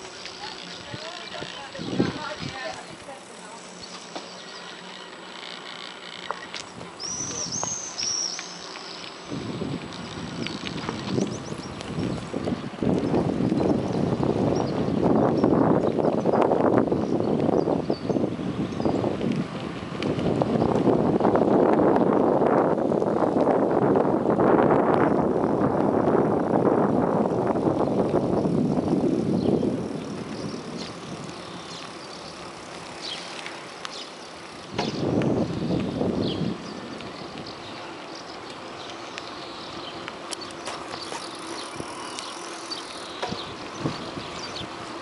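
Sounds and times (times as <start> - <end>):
wind rushing on microphone: 0.0 - 3.4, 6.6 - 8.2, 9.2 - 33.2, 33.9 - 37.8, 43.0 - 45.0
bicycle knocks and rattles: 3.8 - 17.8, 27.6 - 37.5, 40.2 - 45.0.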